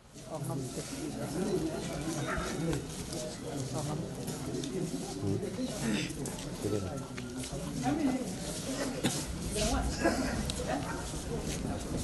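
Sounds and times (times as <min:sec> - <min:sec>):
people talking indistinctly: 0:00.2 - 0:12.0.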